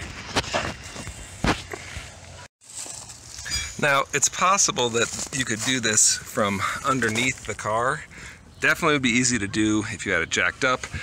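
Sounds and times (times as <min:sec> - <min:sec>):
footsteps scuffing on gritty pavement: 0:00.0 - 0:03.8, 0:04.7 - 0:07.7.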